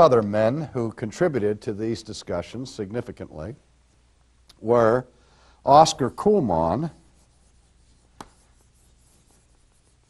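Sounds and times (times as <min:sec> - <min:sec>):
chalk scratching on chalkboard: 0:06.8 - 0:10.0
sharp chalk tap: 0:08.0 - 0:08.6.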